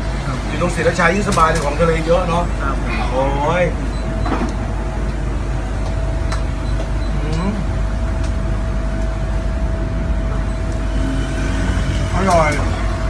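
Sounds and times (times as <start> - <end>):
faint hum: 0.0 - 13.0
low background rumble: 0.0 - 13.0.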